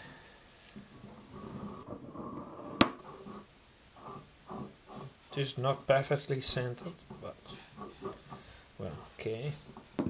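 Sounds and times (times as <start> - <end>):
metal cylinder scraping on rod: 1.0 - 9.3.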